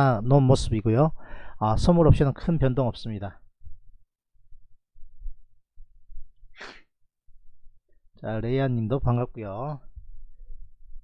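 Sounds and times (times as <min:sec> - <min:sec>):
man's sharp breath: 0:01.2 - 0:01.6, 0:06.5 - 0:06.9.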